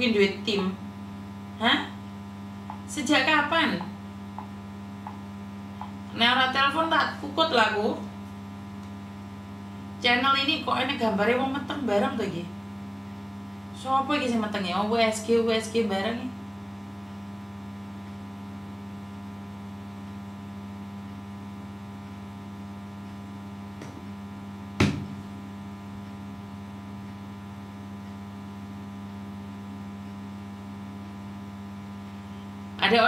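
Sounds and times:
electrical mains hum: 0:00.0 - 0:33.0
sharp tap: 0:24.8 - 0:25.2.

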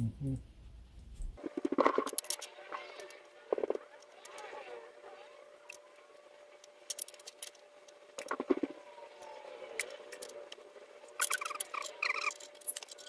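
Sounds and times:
small clicks and light scraping: 0:01.1 - 0:04.5, 0:06.6 - 0:13.0.

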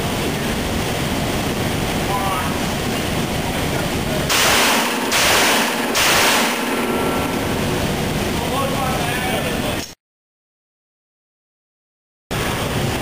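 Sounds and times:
steady background hiss: 0:00.0 - 0:09.9
pistol shots: 0:04.3 - 0:07.3.

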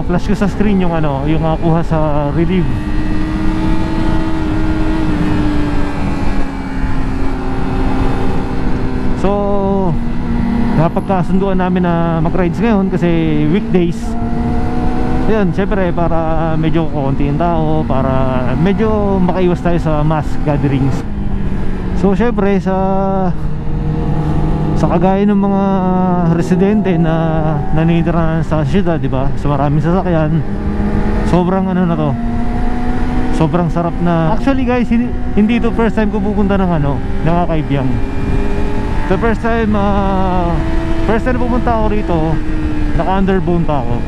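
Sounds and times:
motorcycle engine cruising: 0:00.0 - 0:44.0.

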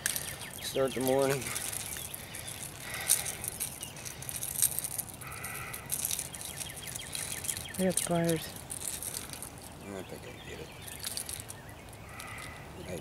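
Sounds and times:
fishing lure clicks and rattles: 0:00.0 - 0:09.8, 0:10.8 - 0:11.6
bird call: 0:10.4 - 0:12.7.

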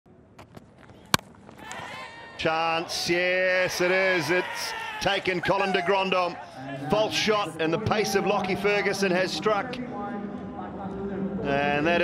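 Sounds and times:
crowd noise: 0:00.1 - 0:12.0
cricket bat crack: 0:00.4 - 0:02.0.

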